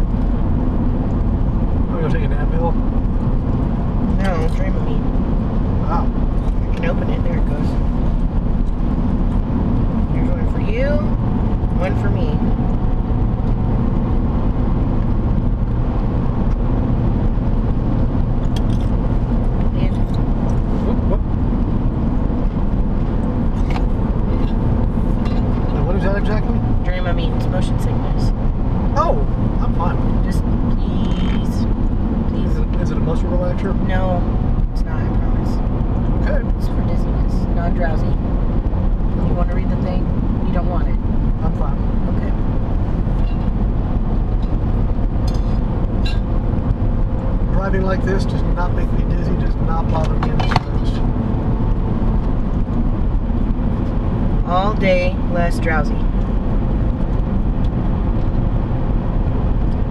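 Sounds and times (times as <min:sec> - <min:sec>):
car driving at highway speed: 0:00.0 - 0:59.9.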